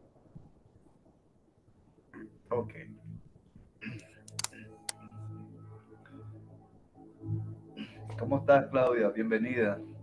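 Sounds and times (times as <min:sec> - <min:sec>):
faint background music: 0:01.5 - 0:10.0
computer keyboard clicks: 0:04.2 - 0:05.0.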